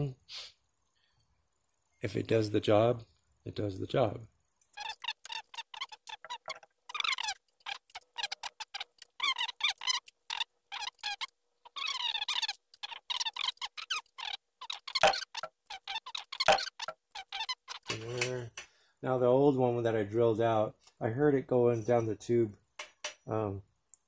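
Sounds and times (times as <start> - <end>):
metal frame squeaking: 4.8 - 18.4.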